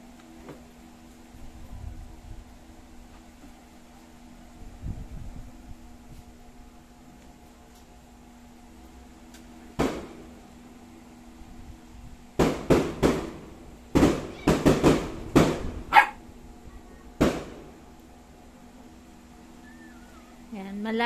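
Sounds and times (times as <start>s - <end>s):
firecrackers and fireworks banging: 12.4s - 15.7s, 17.2s - 17.7s.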